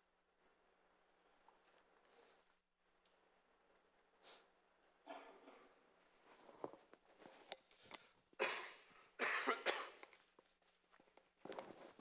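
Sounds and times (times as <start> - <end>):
man coughing: 8.4 - 10.0.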